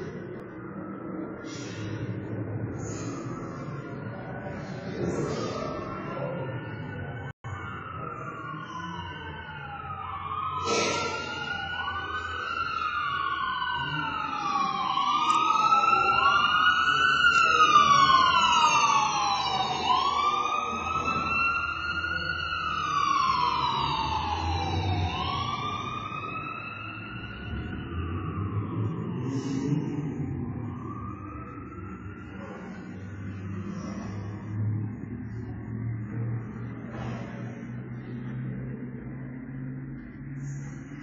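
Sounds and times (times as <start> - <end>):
emergency sirens wailing: 0.0 - 41.0.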